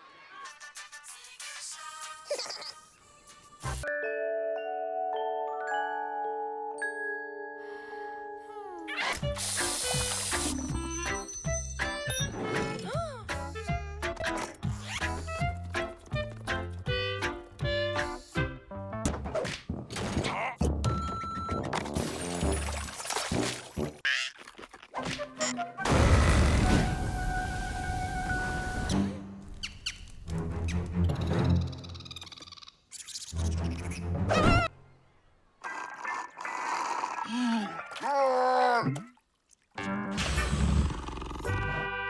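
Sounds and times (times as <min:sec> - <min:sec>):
cartoon background music: 0:07.3 - 0:24.3, 0:24.9 - 0:29.4, 0:30.3 - 0:34.8, 0:39.8 - 0:42.0
running splashing water: 0:22.2 - 0:25.0.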